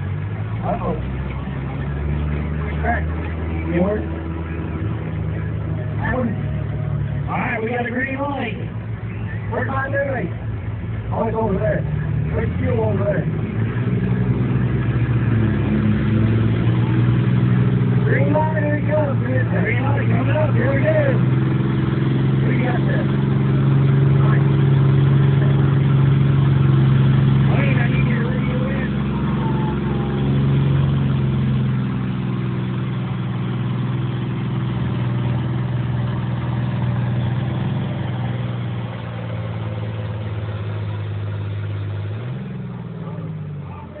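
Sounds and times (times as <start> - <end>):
engine revving: 0.0 - 44.0
tractor diesel engine under load: 0.0 - 44.0.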